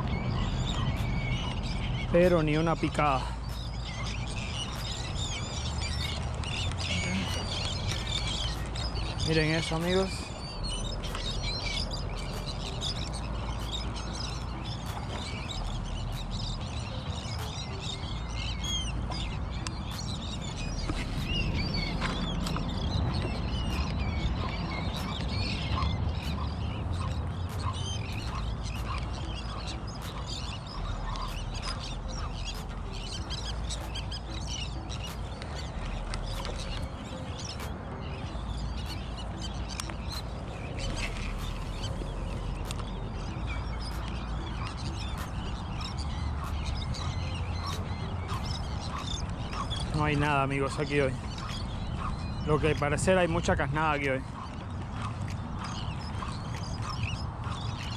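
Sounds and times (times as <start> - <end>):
seabirds calling: 0.0 - 57.9
wind rumble on microphone: 0.0 - 57.9.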